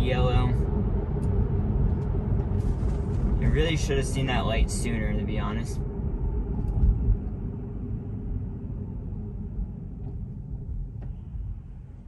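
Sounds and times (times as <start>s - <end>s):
road and tyre rumble in car: 0.0s - 12.0s.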